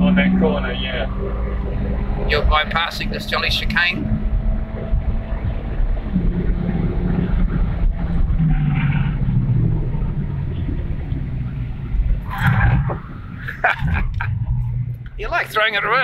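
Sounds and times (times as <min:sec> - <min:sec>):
car engine driven hard: 0:00.0 - 0:16.0
low road rumble: 0:00.0 - 0:16.0.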